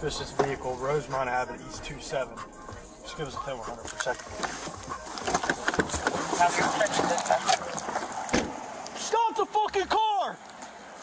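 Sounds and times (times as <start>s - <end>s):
muffled voices: 0.0s - 8.2s
body camera knocks and rustling: 3.9s - 8.6s
heavy thump: 8.3s - 8.6s.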